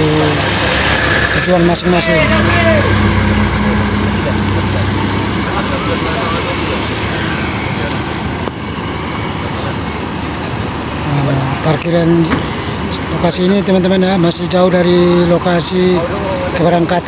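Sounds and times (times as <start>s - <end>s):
bus engine passing by: 0.0s - 17.0s
steady road noise: 0.0s - 17.0s.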